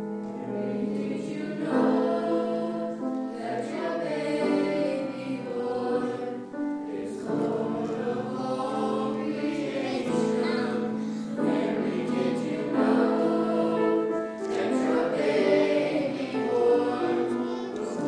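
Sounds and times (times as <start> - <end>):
choir singing sustained notes: 0.0 - 18.0.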